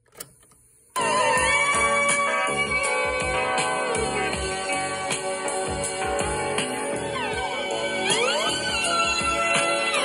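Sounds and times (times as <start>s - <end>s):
recorded music from speaker: 0.0s - 10.0s.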